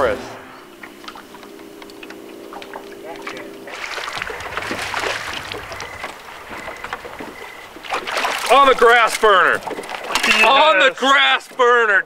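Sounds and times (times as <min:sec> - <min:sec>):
low steady hum: 0:00.0 - 0:10.8
fish splashing at the surface: 0:01.1 - 0:10.6.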